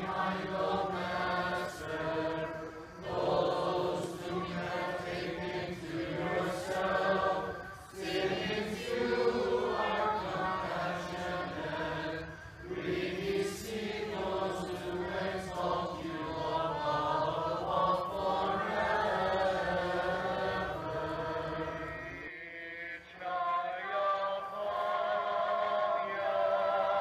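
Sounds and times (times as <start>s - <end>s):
congregation singing chant: 0.0s - 27.0s.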